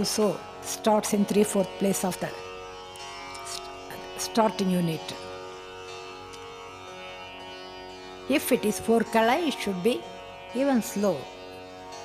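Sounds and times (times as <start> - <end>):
sruti drone: 0.0 - 12.0.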